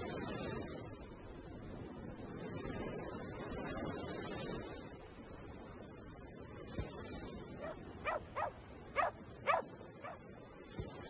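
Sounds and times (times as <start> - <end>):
small dog barking: 7.6 - 10.2.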